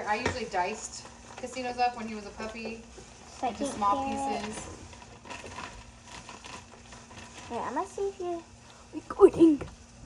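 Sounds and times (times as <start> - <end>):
plastic bag rustling: 0.0 - 8.5.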